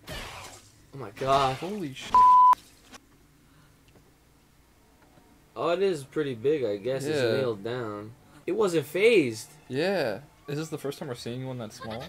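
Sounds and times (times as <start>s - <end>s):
censor bleep: 2.2s - 2.6s.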